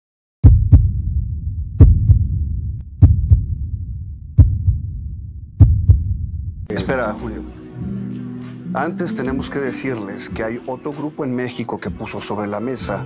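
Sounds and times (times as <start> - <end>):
heartbeat thumps: 0.4 - 6.7
low rumble: 0.4 - 6.7.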